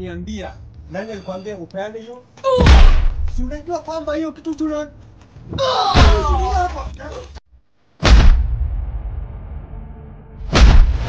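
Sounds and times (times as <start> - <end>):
man crying out: 2.4 - 2.7, 5.6 - 6.8
sharp thump: 2.6 - 3.5, 8.0 - 9.0, 10.4 - 11.0.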